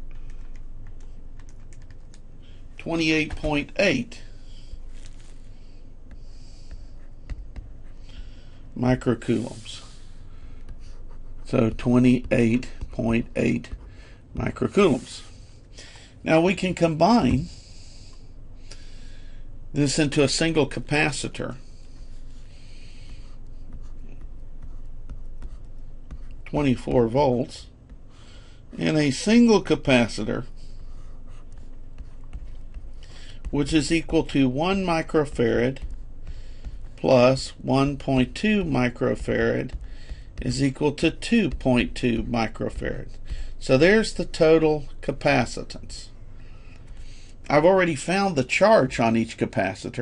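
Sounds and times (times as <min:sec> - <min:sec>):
stylus tapping and scratching: 0:00.0 - 0:15.0, 0:20.2 - 0:48.2.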